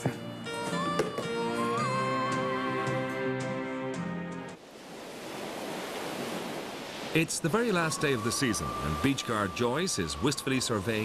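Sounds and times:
music: 0.0 - 4.6, 7.8 - 11.0
sea surf: 4.6 - 11.0.

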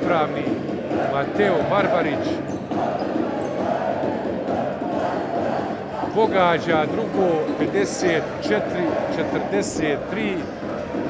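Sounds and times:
crowd of many voices: 0.0 - 11.0.

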